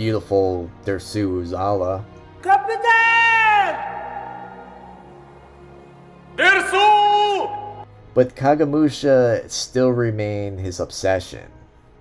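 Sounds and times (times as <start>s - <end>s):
man shouting long call: 2.4s - 5.1s, 6.4s - 7.8s.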